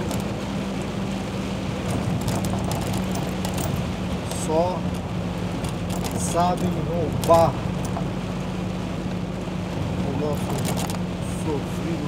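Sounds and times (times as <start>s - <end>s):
diesel engine droning: 0.0s - 12.0s
rain and wet road hiss: 0.0s - 12.0s
raindrops ticking on windshield: 0.0s - 12.0s.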